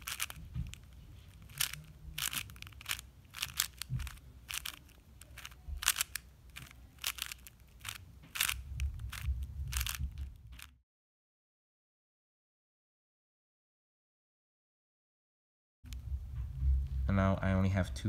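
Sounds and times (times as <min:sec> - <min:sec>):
plastic puzzle cube clacking: 0:00.0 - 0:10.7.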